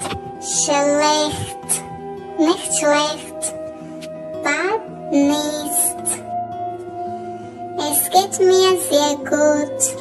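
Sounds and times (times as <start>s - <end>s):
soft background music: 0.0s - 10.0s
high voice speaking: 0.5s - 1.8s, 2.4s - 3.6s, 4.4s - 6.2s, 7.8s - 9.9s.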